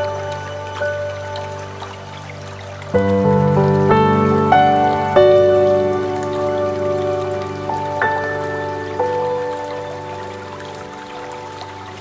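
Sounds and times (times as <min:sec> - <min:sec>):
rain patter: 0:00.0 - 0:12.0
slow piano notes: 0:00.0 - 0:12.0.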